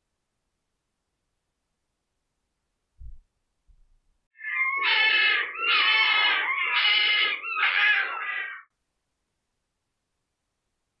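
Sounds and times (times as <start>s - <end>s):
fox crying: 4.4s - 8.7s.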